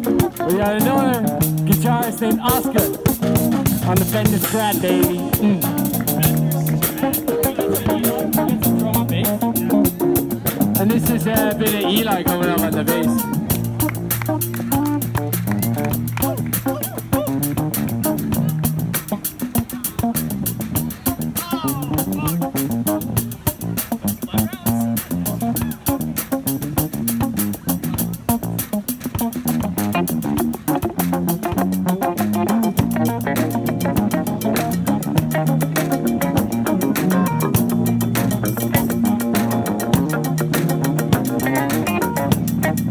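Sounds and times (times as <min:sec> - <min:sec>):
electric bass solo: 0:00.0 - 0:42.9
live fusion jam band: 0:00.0 - 0:42.9.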